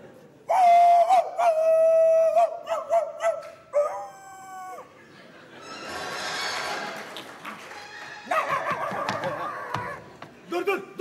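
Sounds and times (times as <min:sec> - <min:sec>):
man howling like a dog: 0:00.5 - 0:04.9.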